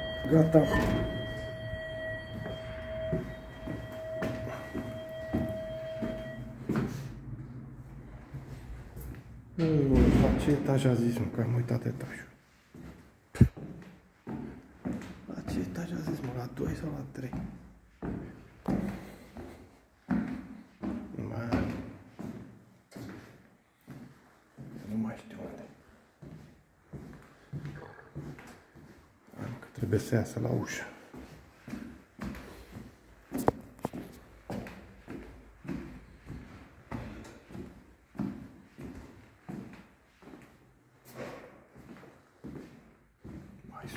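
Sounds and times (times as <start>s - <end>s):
intercom electronic buzz: 0.0s - 6.9s
footsteps on a staircase: 0.0s - 9.8s, 12.0s - 29.9s, 30.6s - 43.9s.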